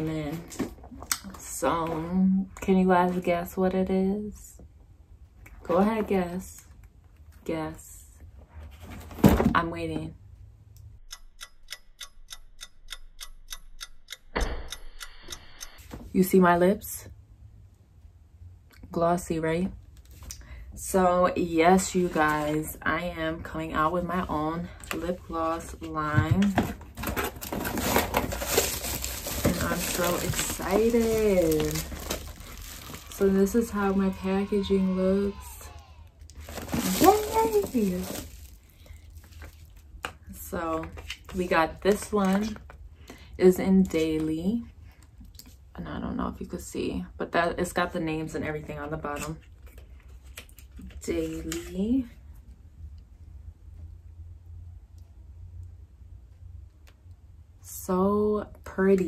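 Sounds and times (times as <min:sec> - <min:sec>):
low steady hum: 0:00.0 - 0:59.0
clock ticking: 0:11.0 - 0:15.8.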